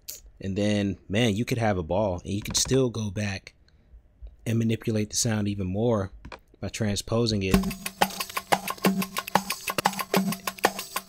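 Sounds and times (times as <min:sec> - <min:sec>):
clicky percussive groove: 0:07.5 - 0:11.0.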